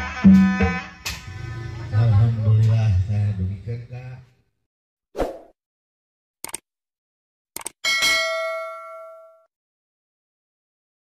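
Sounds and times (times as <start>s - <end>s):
short clicks: 6.4s - 6.6s, 7.6s - 7.8s
bright bell ding: 7.8s - 9.5s.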